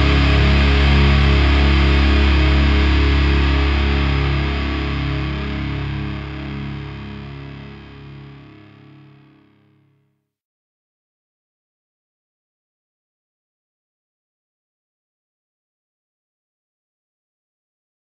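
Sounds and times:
distorted electric guitar chord: 0:00.0 - 0:09.9.

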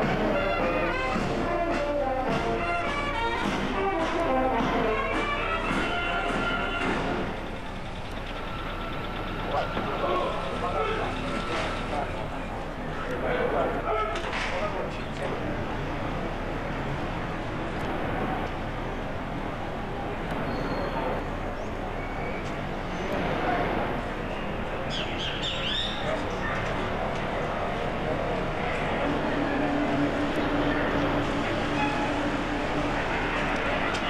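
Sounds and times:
outdoor background noise: 0:00.0 - 0:34.0
people talking indistinctly: 0:04.5 - 0:16.9
birds chirping: 0:07.4 - 0:12.6, 0:24.2 - 0:26.6.

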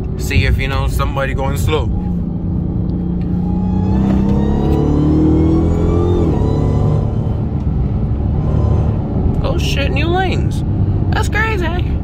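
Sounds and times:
supercharger whine: 0:00.0 - 0:10.0
car engine accelerating hard: 0:00.0 - 0:11.8.

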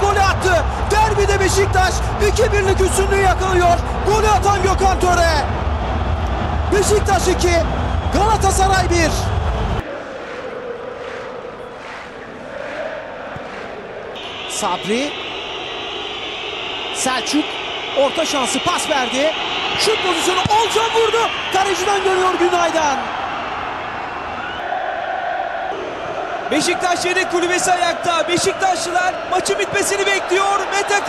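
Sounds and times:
stadium crowd cheering: 0:00.0 - 0:31.0.

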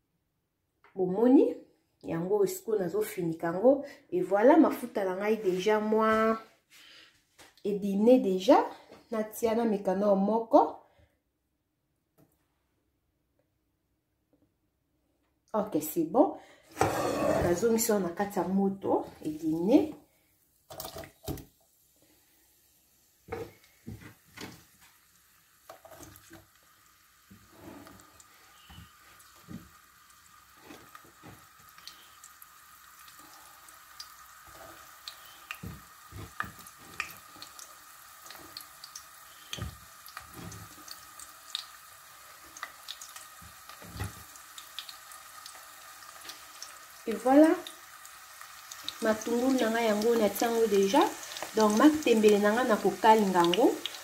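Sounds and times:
onions sizzling in oil: 0:16.8 - 0:18.1, 0:20.8 - 0:54.0
small crackles and clicks: 0:30.6 - 0:32.3, 0:34.0 - 0:41.7.

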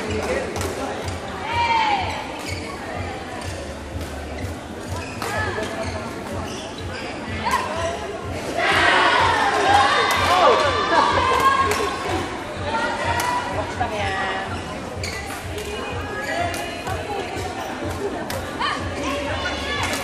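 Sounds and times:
spectators' voices: 0:00.0 - 0:20.0
shoes squealing on court: 0:02.4 - 0:02.8, 0:04.4 - 0:08.1, 0:15.0 - 0:15.6, 0:16.2 - 0:16.8
crowd shouting and cheering: 0:07.3 - 0:20.0.

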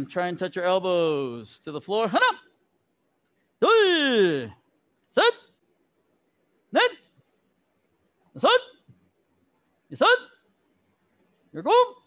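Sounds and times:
man calling out a count: 0:00.0 - 0:02.6, 0:03.6 - 0:05.6, 0:06.7 - 0:07.1, 0:08.3 - 0:08.9, 0:09.9 - 0:10.4, 0:11.5 - 0:12.0.

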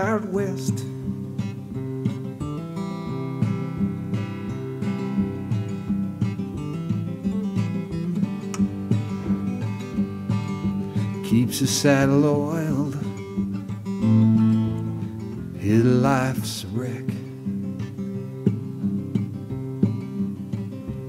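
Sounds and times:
acoustic guitar strumming chords: 0:00.0 - 0:21.0.

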